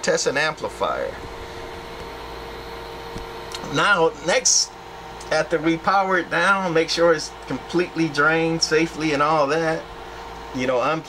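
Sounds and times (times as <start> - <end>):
amplifier hum: 0.0 - 11.0.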